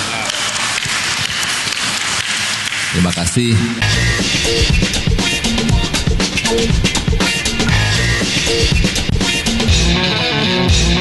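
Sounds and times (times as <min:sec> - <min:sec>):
audience applauding: 0:00.0 - 0:03.4.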